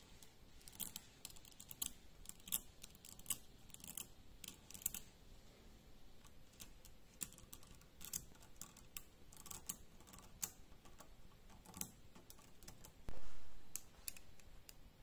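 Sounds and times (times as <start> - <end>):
magnetic balls clicking: 6.2 - 13.1.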